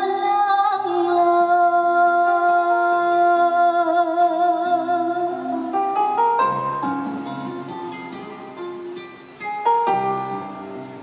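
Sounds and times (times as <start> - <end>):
woman singing a ballad: 0.0 - 6.4
soft backing track: 0.0 - 11.0.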